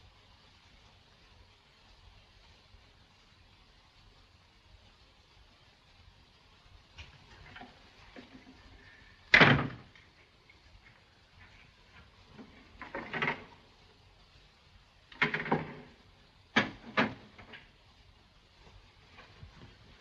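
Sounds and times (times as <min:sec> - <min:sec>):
door banging shut: 0:09.3 - 0:10.0, 0:16.6 - 0:17.6.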